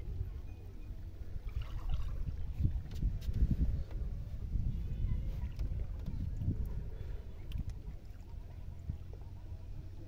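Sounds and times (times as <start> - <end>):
faint water around boat: 0.0 - 10.0
wind rumble on microphone: 0.0 - 10.0.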